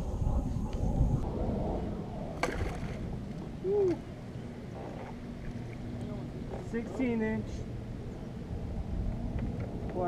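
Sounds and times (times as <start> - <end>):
low rumble of water: 0.0 - 10.0
wind: 0.0 - 10.0.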